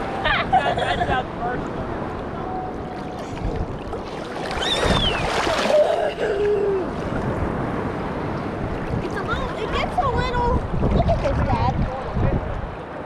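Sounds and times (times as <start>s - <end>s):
water sloshing and lapping: 2.1s - 12.8s.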